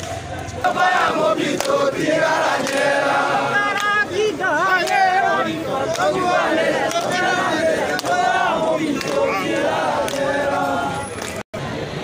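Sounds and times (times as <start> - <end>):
crowd singing in unison: 0.2 - 11.7.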